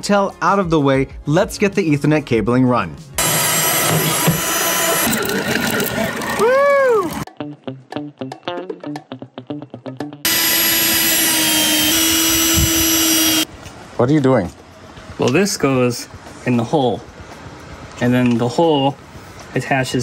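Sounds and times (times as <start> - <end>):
background music: 0.0 - 4.2
cordless drill whining: 3.2 - 6.4, 10.3 - 13.5.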